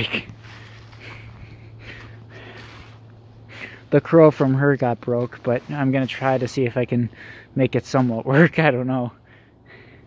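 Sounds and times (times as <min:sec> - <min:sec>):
low steady hum: 0:00.0 - 0:10.0
person breathing and sniffing: 0:00.3 - 0:03.9.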